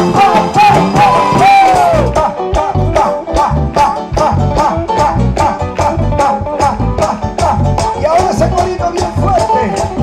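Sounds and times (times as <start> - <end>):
conga drums: 0.0 - 10.0
lead vocal singing: 0.0 - 10.0
salsa band playing: 0.0 - 10.0.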